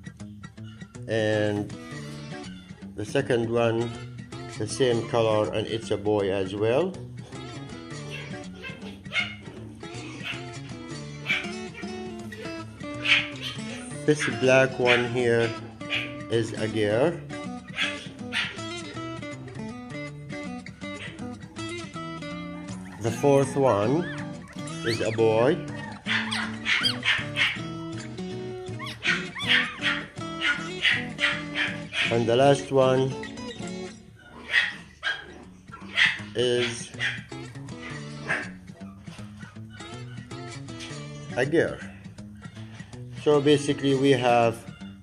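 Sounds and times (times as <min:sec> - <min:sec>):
background music: 0:00.0 - 0:45.0
newborn puppies crying: 0:00.5 - 0:01.1, 0:01.8 - 0:02.9, 0:07.0 - 0:45.0.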